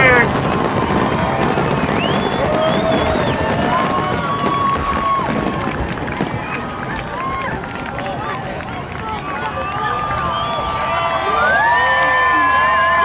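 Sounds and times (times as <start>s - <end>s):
crowd talking and cheering: 0.0s - 13.0s.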